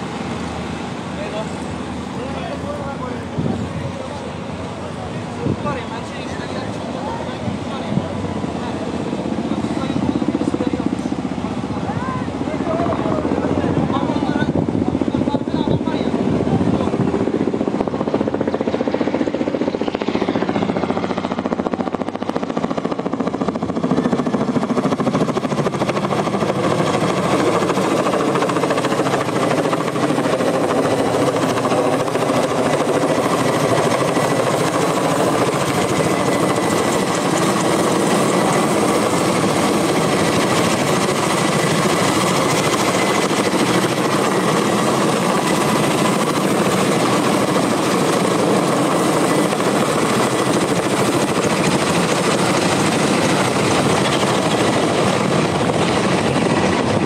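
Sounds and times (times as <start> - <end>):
helicopter hovering overhead: 0.0 - 57.0.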